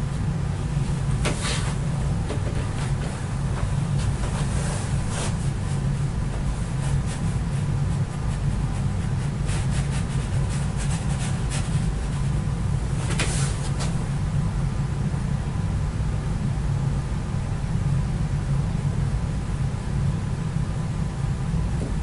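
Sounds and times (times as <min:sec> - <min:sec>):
low hum: 0:00.0 - 0:22.0.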